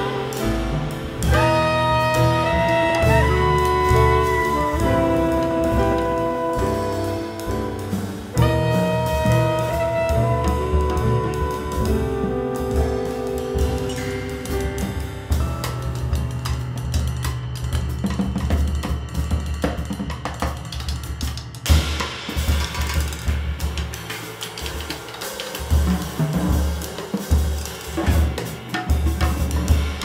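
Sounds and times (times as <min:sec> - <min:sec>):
double bass notes: 0:00.0 - 0:20.2
piano chords: 0:00.0 - 0:21.6
drum kit: 0:00.0 - 0:30.0.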